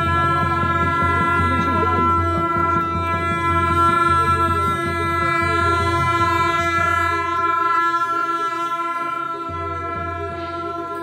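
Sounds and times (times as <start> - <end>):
ritual horns sounding a chord: 0.0 - 11.0.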